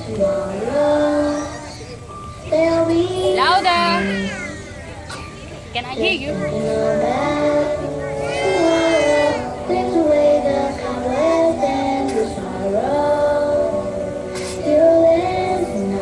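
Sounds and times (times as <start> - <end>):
children singing: 0.0 - 4.6, 6.4 - 13.9, 14.5 - 16.0.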